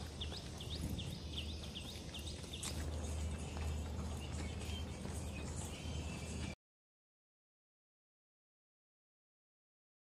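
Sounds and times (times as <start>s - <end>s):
bird chirping: 0.0s - 6.6s.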